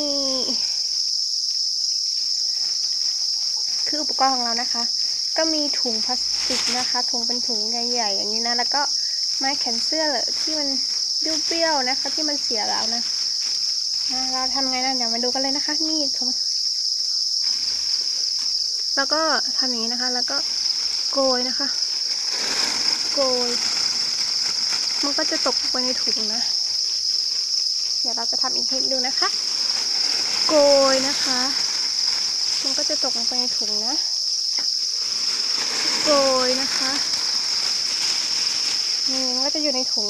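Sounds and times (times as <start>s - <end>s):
crickets chirping: 0.0s - 40.0s
plastic bag rustling: 2.1s - 16.1s, 17.3s - 40.0s.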